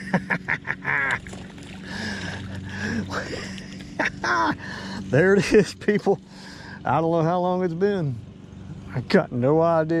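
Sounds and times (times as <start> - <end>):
fish splashing at surface: 1.1 - 3.7.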